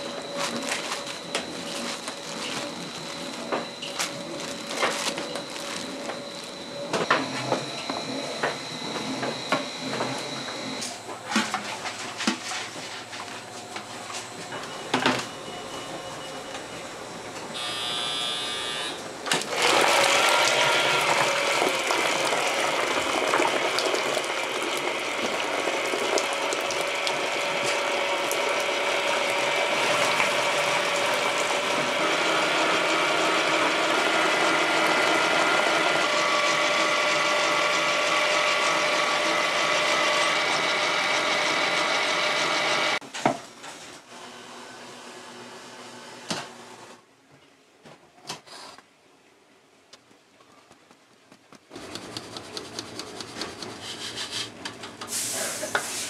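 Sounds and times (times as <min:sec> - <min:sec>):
stand mixer motor whining: 0:17.6 - 0:43.0.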